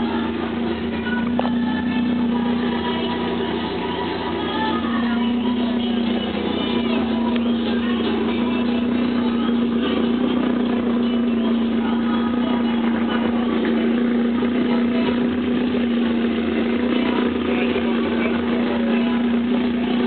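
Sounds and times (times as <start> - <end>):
faint music: 0.0 - 20.0
faint voices: 0.0 - 20.0.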